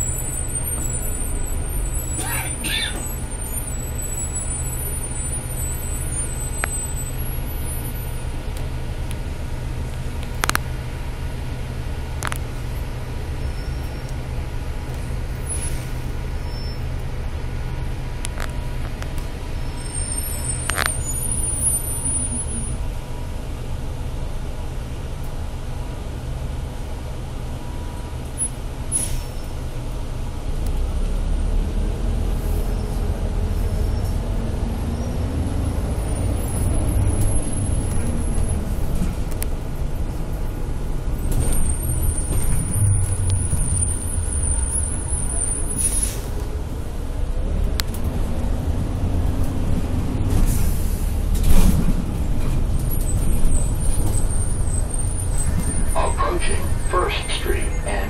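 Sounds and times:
bus interior rumble: 0.0s - 58.0s.

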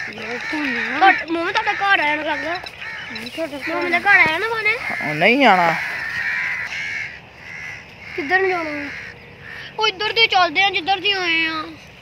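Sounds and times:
bird calling hoarsely: 0.0s - 11.8s.

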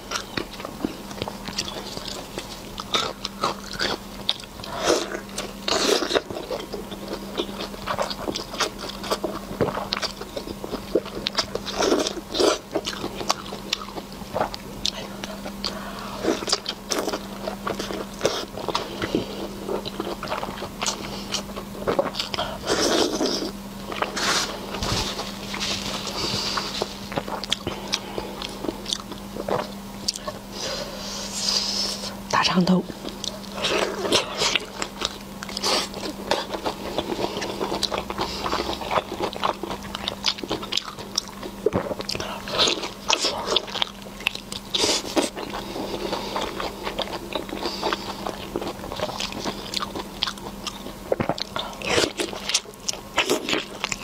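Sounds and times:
faint steady hum: 0.0s - 54.0s
wet biting and chewing: 0.1s - 30.4s, 33.0s - 54.0s.

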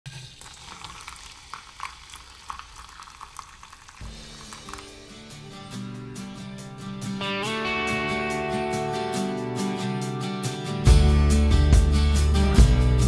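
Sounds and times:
crackling hiss with pops: 0.4s - 6.0s
guitar music: 4.0s - 13.0s.

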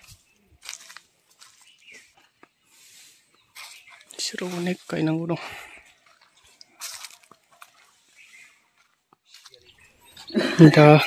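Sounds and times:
footsteps rustling through undergrowth: 0.0s - 11.0s.

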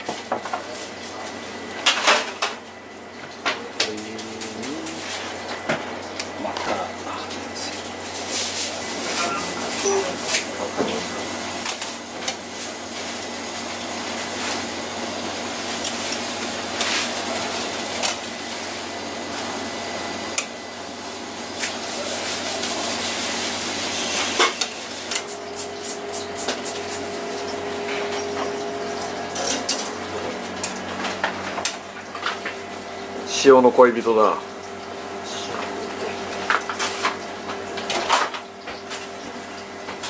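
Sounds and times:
rushing kitchen background noise: 0.0s - 40.0s.

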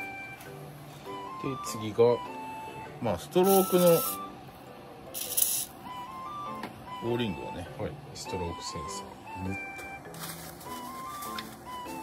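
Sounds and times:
aerosol spray hiss: 5.2s - 5.7s.

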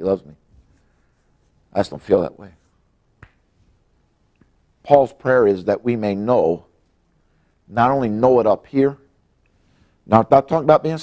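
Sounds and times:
man speaking: 0.0s - 0.4s, 1.7s - 2.7s, 4.8s - 6.7s, 7.7s - 9.1s, 10.1s - 11.0s.

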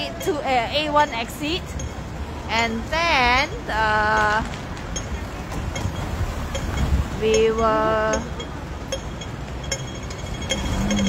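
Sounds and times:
low traffic rumble: 0.0s - 11.0s
wind buffeting microphone: 1.9s - 8.9s.

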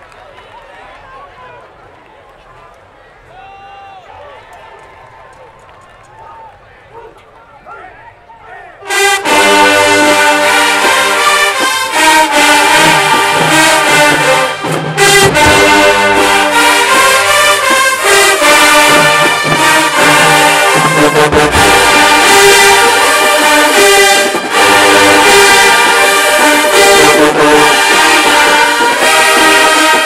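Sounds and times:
faint crowd voices: 0.0s - 30.0s
brass marching band playing: 7.7s - 30.0s.

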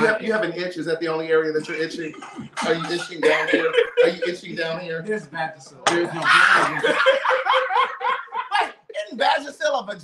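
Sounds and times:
men laughing hard: 2.4s - 4.7s, 6.2s - 8.7s.

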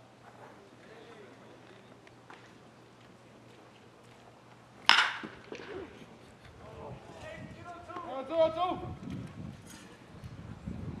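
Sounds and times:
faint voices: 0.5s - 2.0s
metal bat hitting ball: 4.9s - 5.9s.

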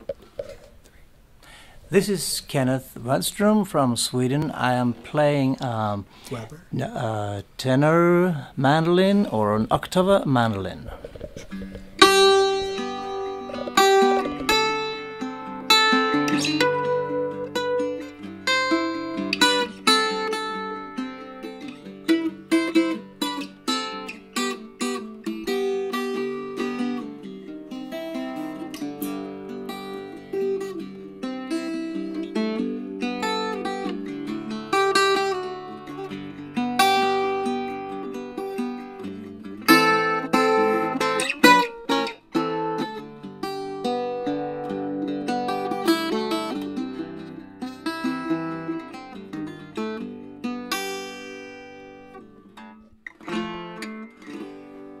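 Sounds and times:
mandolin picking and strumming: 0.0s - 55.0s.

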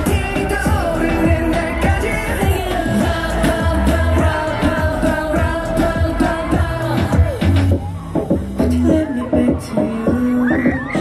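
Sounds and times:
pop song through speakers: 0.0s - 11.0s.

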